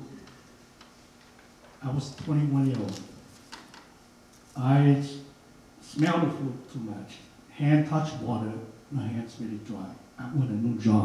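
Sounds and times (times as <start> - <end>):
faint steady hum: 0.0 - 11.0
man speaking: 1.8 - 3.1, 4.6 - 11.0.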